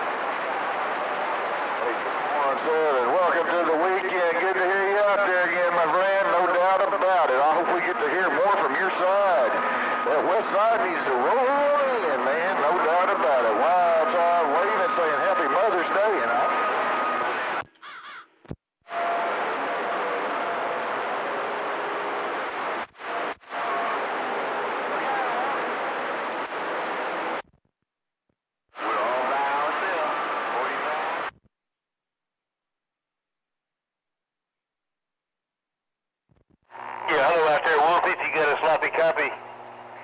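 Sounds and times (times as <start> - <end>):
faint steady radio tones: 0.0 - 17.7, 18.9 - 27.6, 28.7 - 31.5, 36.3 - 40.0
radio static hiss: 0.0 - 17.7, 18.9 - 27.6, 28.8 - 31.4, 36.3 - 40.0
garbled radio voice: 1.8 - 16.6, 37.0 - 39.4.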